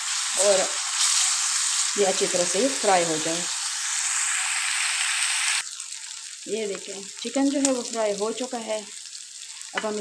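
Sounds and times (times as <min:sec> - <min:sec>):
chicken and onion sizzling in oil: 0:00.0 - 0:10.0.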